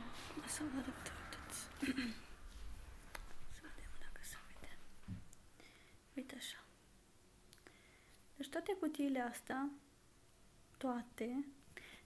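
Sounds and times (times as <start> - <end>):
woman talking softly: 0.0 - 2.2, 3.5 - 4.9, 6.1 - 6.8, 8.4 - 9.8, 10.8 - 11.6.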